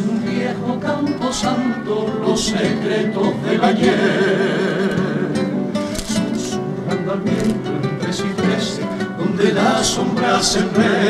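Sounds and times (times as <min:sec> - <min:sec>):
group of people singing: 0:00.0 - 0:11.0
guitars strumming: 0:00.0 - 0:11.0.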